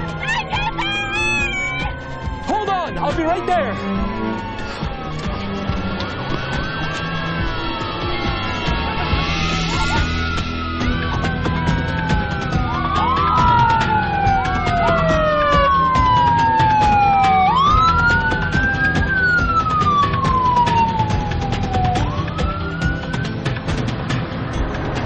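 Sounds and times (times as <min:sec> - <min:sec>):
emergency sirens wailing: 0:00.0 - 0:25.0.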